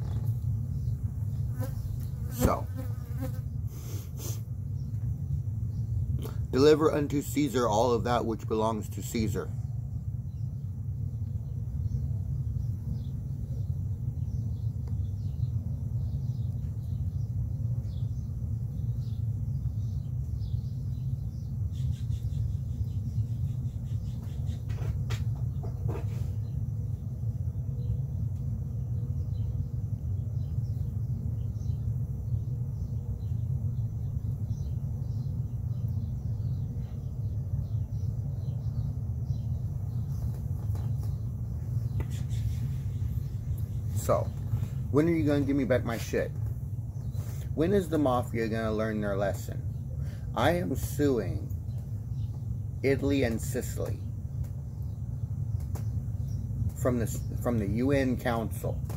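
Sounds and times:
low outdoor rumble: 0.0 - 58.9
faint bird chirps: 9.0 - 46.3.

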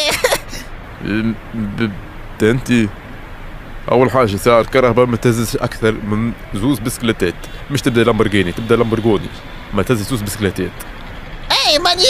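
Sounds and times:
person speaking: 0.0 - 3.0.

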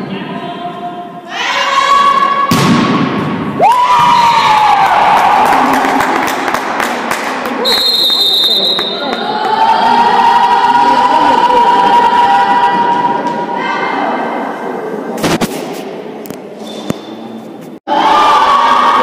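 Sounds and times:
crowd cheering and shouting: 3.5 - 6.4, 9.0 - 14.3, 17.9 - 19.0
shrill whistle: 7.6 - 9.1.

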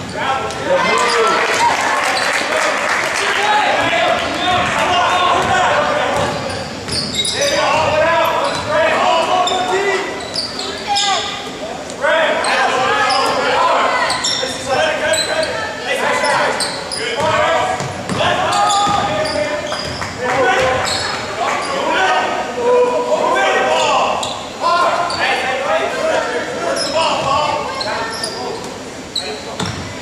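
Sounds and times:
spectators chatting: 0.0 - 30.0
basketball bouncing on wooden floor: 17.2 - 19.2, 29.6 - 29.9.

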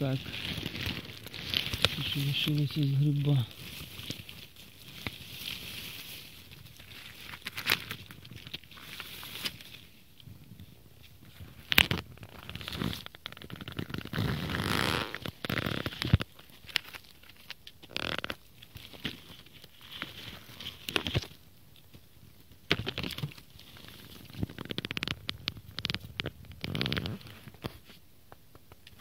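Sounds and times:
twigs snapping: 0.0 - 9.8, 11.6 - 22.0
dry leaves rustling underfoot: 0.0 - 28.0.

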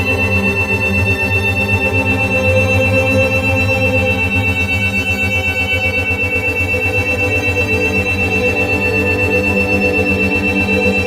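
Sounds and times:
ambient synth drone: 0.0 - 11.0.

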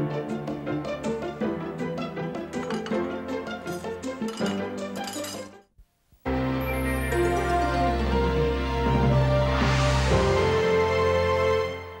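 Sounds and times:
television theme music: 0.0 - 5.2, 6.3 - 12.0.

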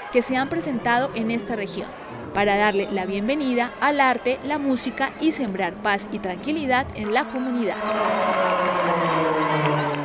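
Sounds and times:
crowd cheering and shouting: 0.0 - 6.0, 7.0 - 10.0.

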